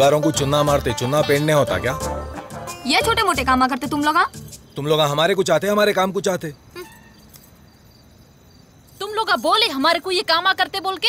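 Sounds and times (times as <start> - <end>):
crickets chirring: 2.6 - 11.0.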